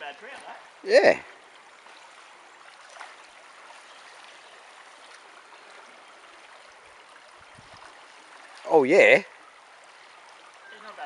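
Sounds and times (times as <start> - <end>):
creek water running over stones: 0.0 - 11.0.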